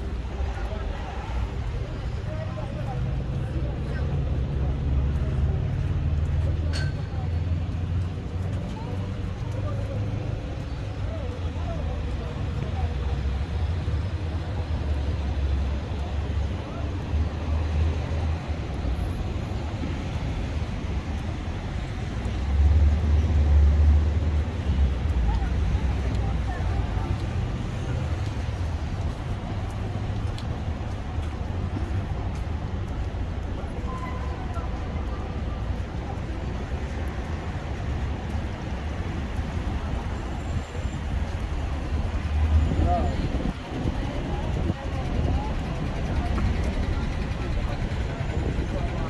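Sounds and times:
rumble of passing cars: 0.0s - 49.0s.

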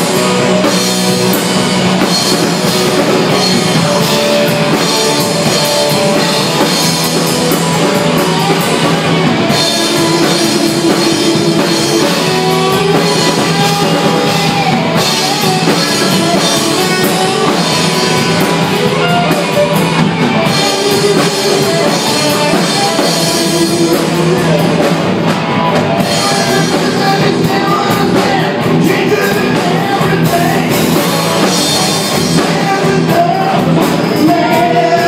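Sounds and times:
drum kit: 0.0s - 35.0s
electric guitar: 0.0s - 35.0s.

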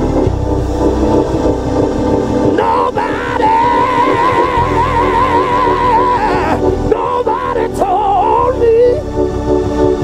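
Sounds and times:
gospel band playing: 0.0s - 10.0s
man singing held high note: 2.6s - 9.0s.

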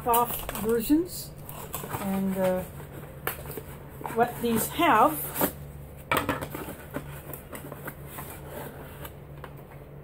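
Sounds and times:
packaging clicks and crinkles: 0.0s - 5.6s, 6.4s - 9.8s.

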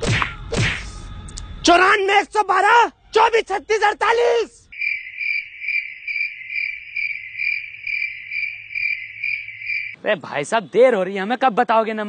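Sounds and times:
cricket chirping trill: 4.7s - 10.0s.

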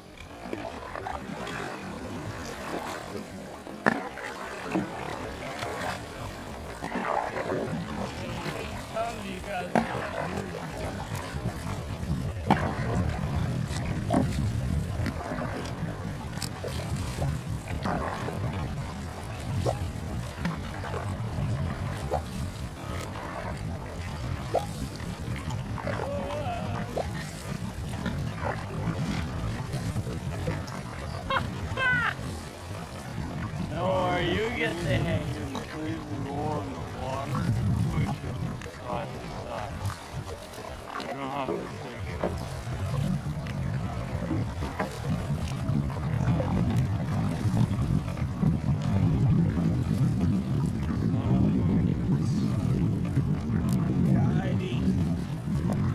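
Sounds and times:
boat motor rumbling: 0.0s - 55.9s.

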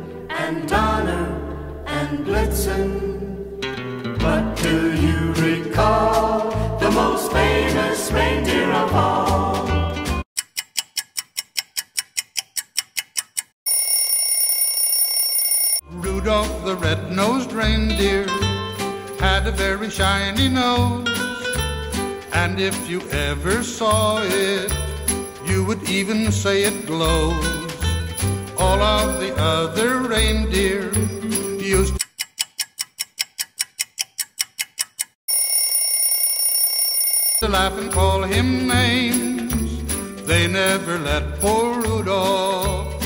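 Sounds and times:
clock-like ticking: 10.4s - 13.6s, 28.6s - 35.2s
alarm clock bell ringing: 13.7s - 15.9s, 35.3s - 37.6s.

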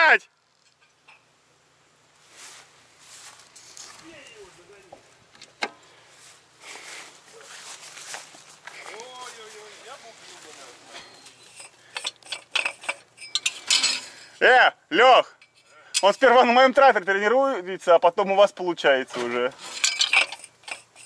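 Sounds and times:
rustling handling noise: 2.1s - 14.4s, 19.0s - 21.0s
footsteps through grass: 2.2s - 4.9s, 6.1s - 11.4s
small metallic clicks: 11.2s - 14.2s.

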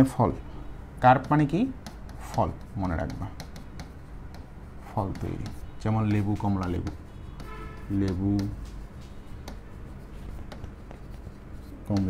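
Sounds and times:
marker scratching on board: 1.0s - 12.0s.

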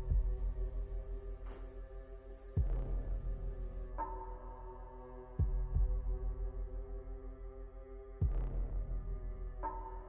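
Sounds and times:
dark ambient drone: 0.0s - 10.0s.

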